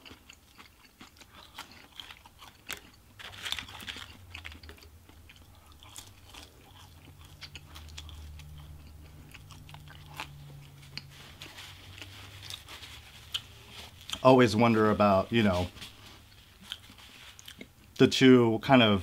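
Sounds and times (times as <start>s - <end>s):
chewing and crunching fries: 0.0s - 18.3s
low steady hum: 0.0s - 19.0s.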